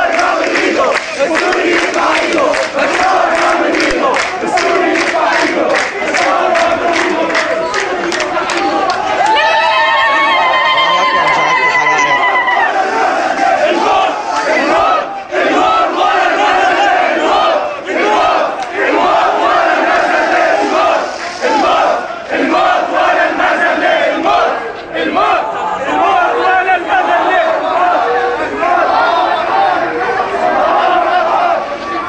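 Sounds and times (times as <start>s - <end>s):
crowd chanting: 0.0s - 32.0s.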